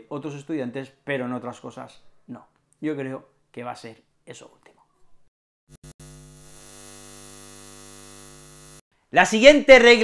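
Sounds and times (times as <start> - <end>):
neon sign electrical buzz: 5.7 - 8.8.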